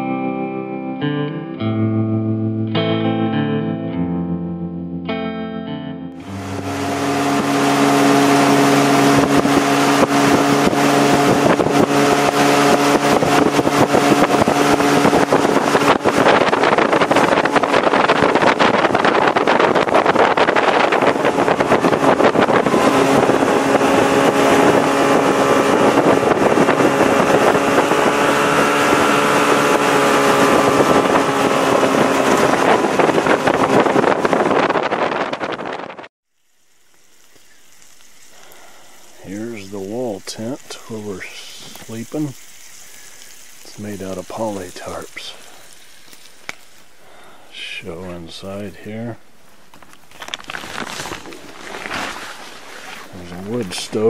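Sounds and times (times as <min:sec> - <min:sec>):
rushing water: 0:06.2 - 0:34.9, 0:36.3 - 0:48.5, 0:49.2 - 0:54.0
jet boat engine running: 0:06.2 - 0:50.2, 0:50.8 - 0:54.0
wind: 0:06.2 - 0:54.0.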